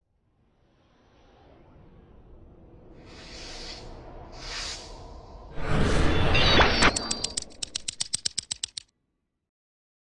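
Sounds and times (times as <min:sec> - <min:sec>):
rapid light clicks: 0:06.9 - 0:08.9.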